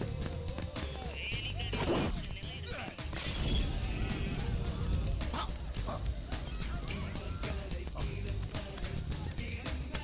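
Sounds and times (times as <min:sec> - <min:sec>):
background film music: 0:00.0 - 0:10.0
glass shattering: 0:03.1 - 0:04.4.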